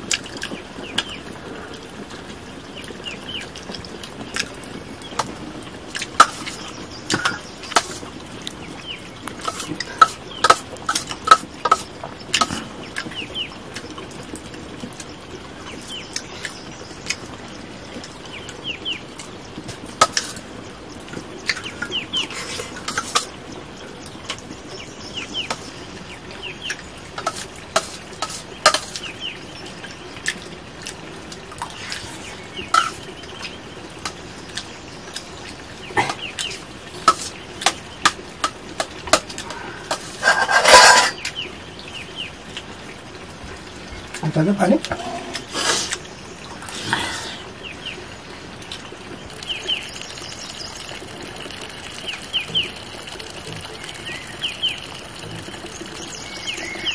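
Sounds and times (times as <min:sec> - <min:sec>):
chickens clucking: 0:39.1 - 0:41.2
metal spoon scraping steel plate: 0:39.9 - 0:41.2.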